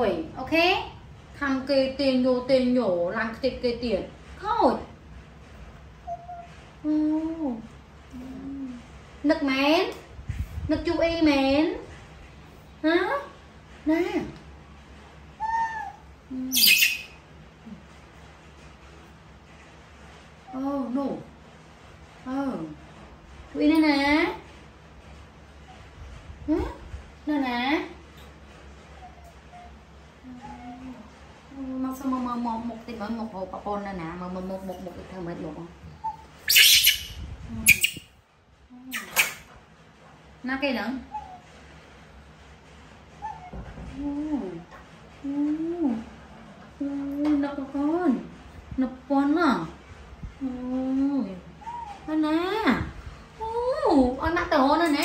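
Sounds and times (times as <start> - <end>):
baby monkey whimpering: 6.0 - 6.5, 15.4 - 17.1, 29.0 - 31.1, 41.1 - 41.4, 43.2 - 43.6, 51.6 - 52.2.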